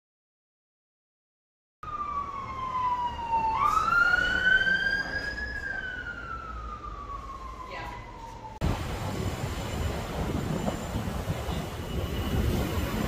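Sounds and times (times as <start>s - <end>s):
emergency vehicle siren wailing: 1.8s - 13.0s
low rumble of street noise: 1.8s - 13.0s.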